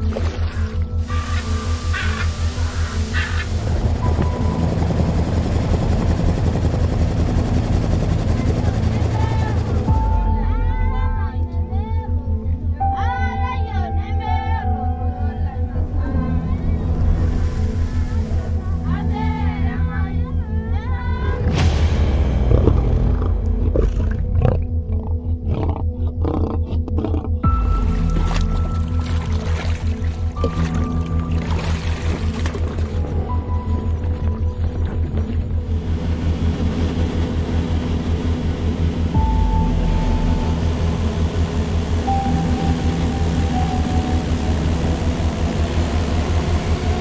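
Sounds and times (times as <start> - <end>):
propeller plane engine droning: 0.0 - 12.6, 15.0 - 26.3, 27.4 - 47.0
background music with deep bass: 0.0 - 47.0
deep rumble: 0.0 - 47.0
lion growling and roaring: 22.4 - 27.5.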